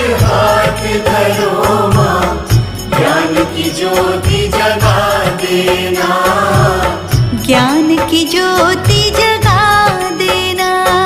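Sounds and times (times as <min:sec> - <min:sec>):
devotional music with rhythmic beat: 0:00.0 - 0:11.0.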